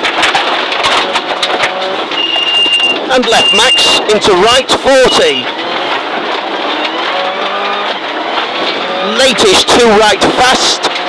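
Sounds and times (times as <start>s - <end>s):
rally car engine: 0.0s - 11.0s
sharp clicks and knocks: 0.0s - 11.0s
tyres on gravel: 0.0s - 11.0s.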